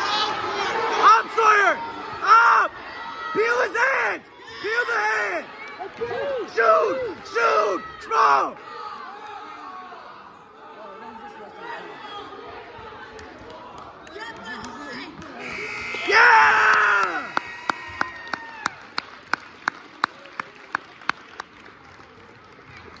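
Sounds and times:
loud shout: 0.0s - 10.3s, 15.4s - 18.8s
gym crowd noise: 0.0s - 23.0s
scoreboard buzzer: 15.4s - 16.2s
hand claps: 16.6s - 23.0s.

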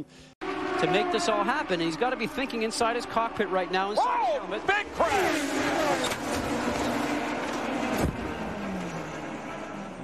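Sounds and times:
race car engines droning: 0.0s - 10.0s
race car passing close: 0.4s - 10.0s.

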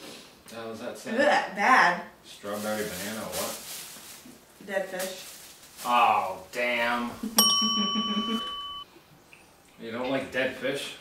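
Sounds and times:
man laughing: 7.2s - 8.6s
bright bell-like ding: 7.4s - 8.9s.

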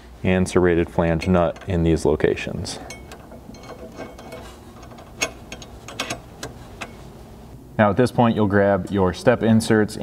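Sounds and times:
light metallic clicks and clinks: 2.7s - 7.1s.

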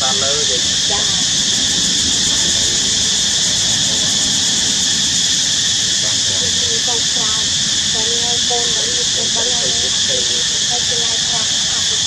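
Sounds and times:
high-pitched hiss: 0.0s - 12.0s.

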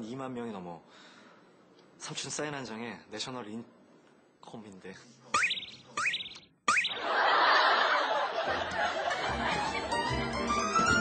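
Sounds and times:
electronic chirp: 5.4s - 7.1s.

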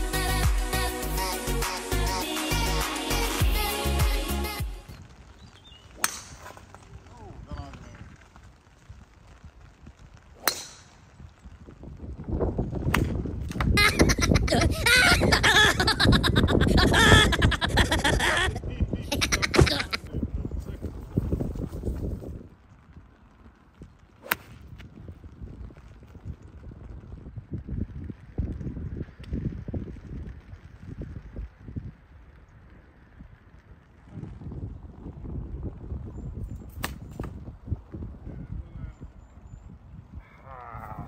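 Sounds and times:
wind buffeting microphone: 4.9s - 41.0s.

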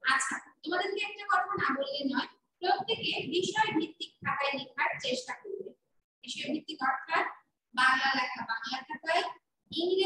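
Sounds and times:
woman speaking: 0.0s - 10.0s.

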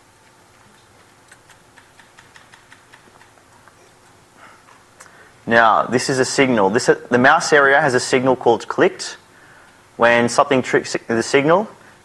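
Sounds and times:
computer keyboard typing: 0.5s - 3.4s.

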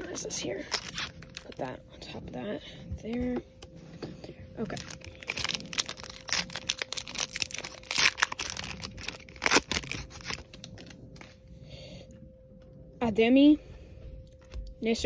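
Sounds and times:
foil wrapper ripping and crinkling: 0.0s - 1.7s, 4.6s - 11.3s.

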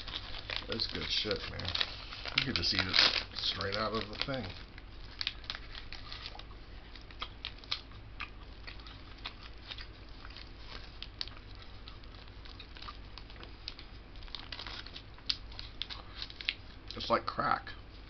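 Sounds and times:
plastic wrapper crinkling: 0.0s - 17.2s
person chewing cheese: 4.9s - 16.9s.

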